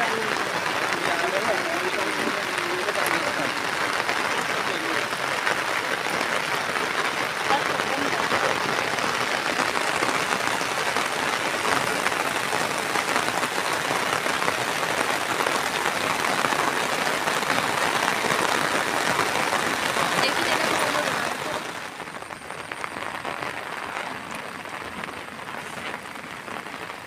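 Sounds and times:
heavy rain falling: 0.0 - 27.0.

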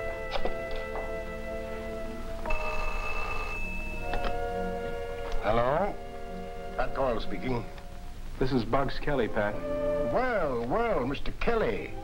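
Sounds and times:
film score sustained chords: 0.0 - 2.7, 3.5 - 12.0
telephone bell ringing: 2.5 - 4.6.

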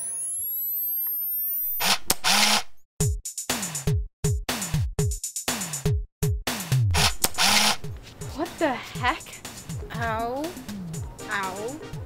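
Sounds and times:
rising electronic tones: 0.0 - 1.9, 10.7 - 11.1
drum machine beat: 3.0 - 12.0.

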